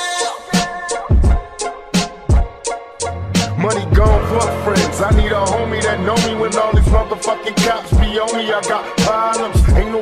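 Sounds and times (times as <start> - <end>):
rapping over a drum beat: 0.0 - 2.3, 3.4 - 10.0.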